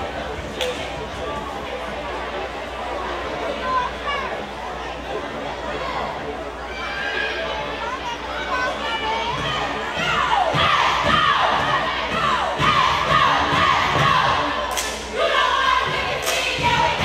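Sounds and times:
gymnasium crowd noise: 0.0 - 17.0
cheerleaders shouting a chant: 5.9 - 17.0.

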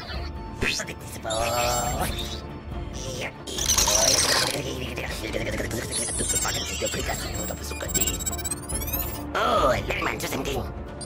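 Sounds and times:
background music: 0.0 - 11.0
robotic scanning texture: 3.0 - 9.2
mechanical clicking and ratcheting: 3.6 - 4.7.

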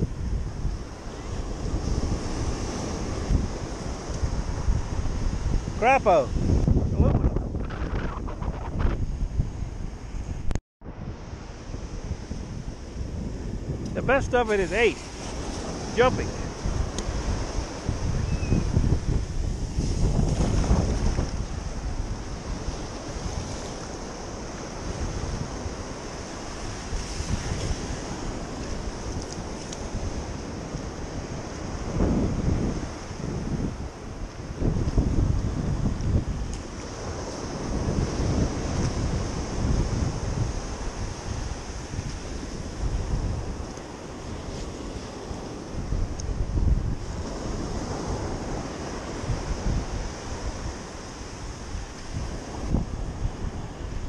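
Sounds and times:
shallow surf: 0.0 - 54.0
wind buffeting microphone: 0.0 - 54.0.

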